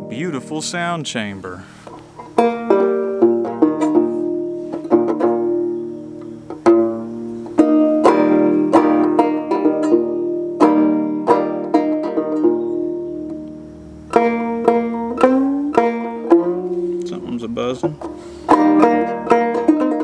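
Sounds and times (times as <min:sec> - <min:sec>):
banjo plucked solo: 0:00.0 - 0:20.0.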